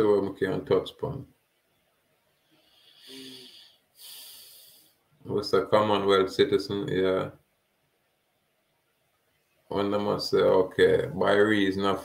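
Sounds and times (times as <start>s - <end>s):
man breathing close to microphone: 2.5s - 5.1s.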